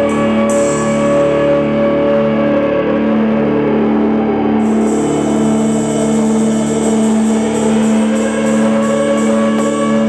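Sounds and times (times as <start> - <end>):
cymbals: 0.0 - 2.4, 4.6 - 10.0.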